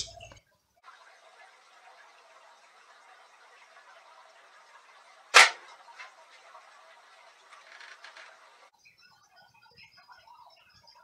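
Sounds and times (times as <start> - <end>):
air rifle shot: 5.4 - 5.7.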